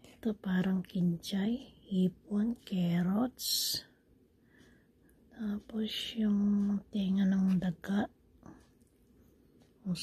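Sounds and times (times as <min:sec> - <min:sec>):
woman speaking: 0:00.0 - 0:04.0, 0:05.3 - 0:08.2.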